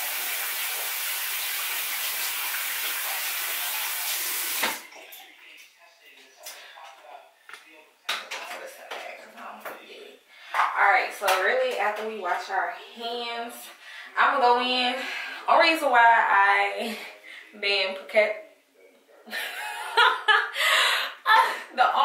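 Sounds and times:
tap running into sink: 4.0 - 4.9.

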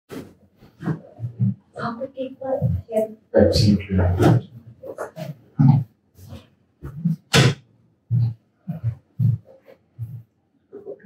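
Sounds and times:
person speaking: 0.8 - 7.5.

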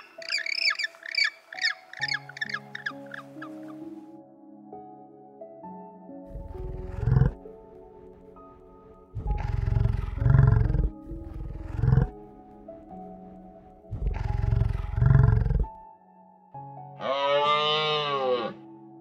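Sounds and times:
background music sustained tones: 0.0 - 19.0
bison bellowing: 6.3 - 7.5, 9.2 - 12.2, 13.9 - 15.8, 17.0 - 18.6.

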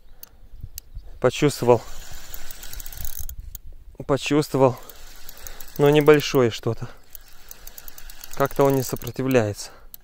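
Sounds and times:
fishing reel whirring and clicking: 1.6 - 3.4, 4.6 - 10.0.

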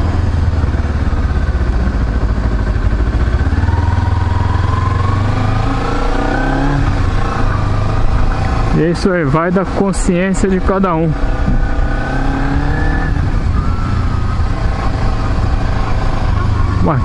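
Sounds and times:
motorcycle engine accelerating: 0.0 - 17.0.

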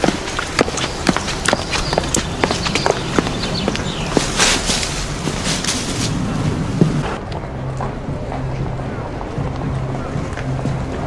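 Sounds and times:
footsteps on hard ground: 0.0 - 11.0
outdoor background noise: 0.0 - 11.0.

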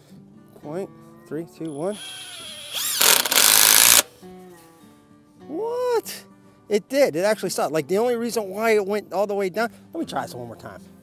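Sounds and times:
soft background music: 0.0 - 11.0
cordless driver driving screw into wood: 1.9 - 4.1.

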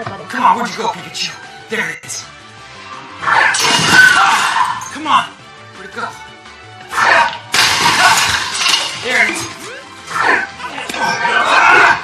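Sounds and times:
loud crash with breaking: 7.5 - 9.2.

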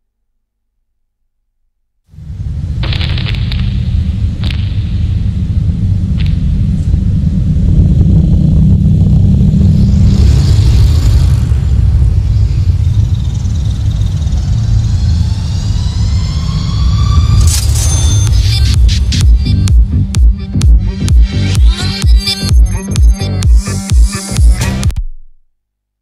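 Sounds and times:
whooshing noise swell: 2.1 - 21.6
deep bass rumble: 2.1 - 25.0
rising synth tones: 2.2 - 24.3.

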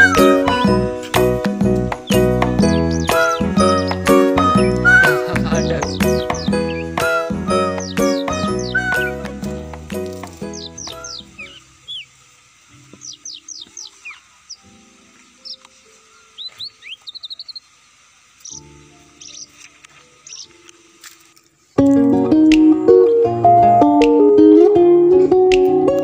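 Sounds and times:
bird trill: 0.0 - 1.0, 1.9 - 9.6, 10.2 - 12.1, 13.0 - 14.7, 15.3 - 17.7, 18.4 - 20.6
plucked-string music: 0.0 - 11.5, 21.8 - 26.0
music track: 0.0 - 11.8, 21.8 - 26.0
birds chirping: 0.0 - 12.2, 12.8 - 20.8.

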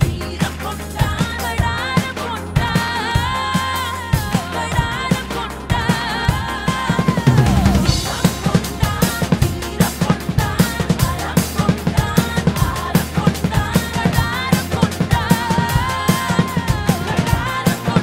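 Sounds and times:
drum kit playing fast: 0.0 - 18.0
song backing track: 0.0 - 18.0.

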